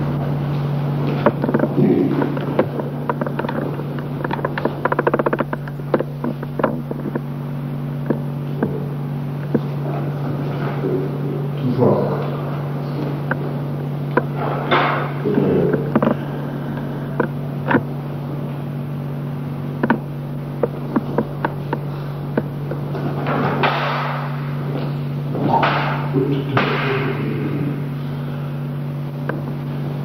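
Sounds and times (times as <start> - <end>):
rustling noises: 0.0 - 25.4
steady low hum: 0.0 - 30.0
sharp clicks and knocks: 0.5 - 10.8, 12.2 - 27.1, 29.1 - 29.7.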